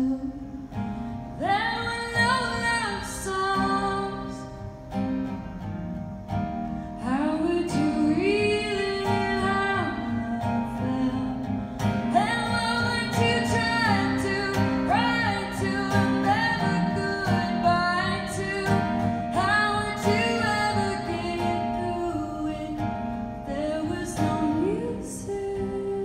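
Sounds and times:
woman singing: 0.0 - 0.8, 1.4 - 4.6, 6.9 - 26.0
acoustic guitar: 0.0 - 26.0.

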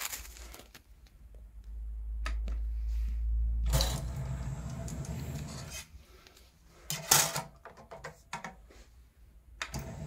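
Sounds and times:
disc tray motor whirring: 9.8 - 10.0.

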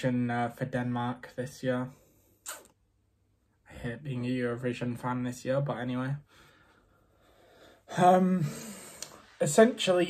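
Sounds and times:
man talking: 0.0 - 2.6, 3.6 - 6.3, 7.9 - 10.0.

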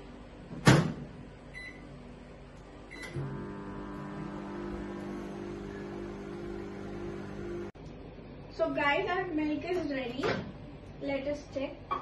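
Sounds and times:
microwave oven humming: 0.0 - 8.4.

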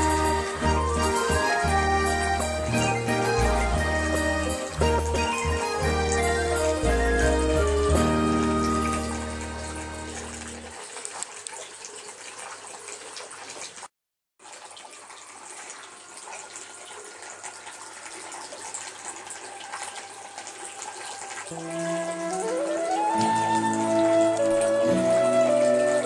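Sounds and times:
held music notes: 0.0 - 10.8, 21.5 - 26.0
water trickling and splashing: 0.0 - 26.0.

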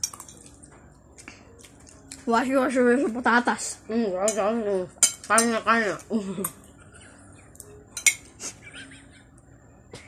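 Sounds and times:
metal spoon clinking on plate: 5.0 - 5.5, 7.6 - 8.3.

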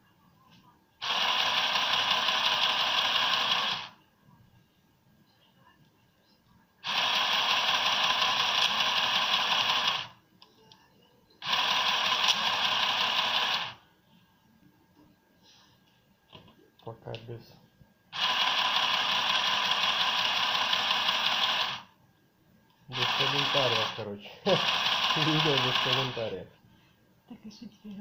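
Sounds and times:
electric sewing machine stitching: 1.0 - 4.0, 6.8 - 10.2, 11.4 - 13.8, 18.2 - 21.9, 22.9 - 26.4.

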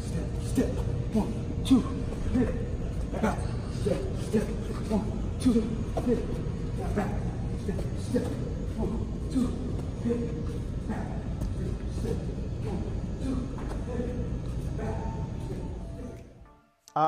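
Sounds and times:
muffled voices: 0.0 - 17.0.

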